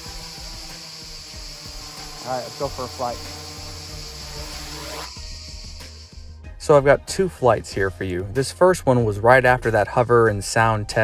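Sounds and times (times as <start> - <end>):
crickets chirring: 0.0 - 6.4
quadcopter motors humming: 0.0 - 6.4.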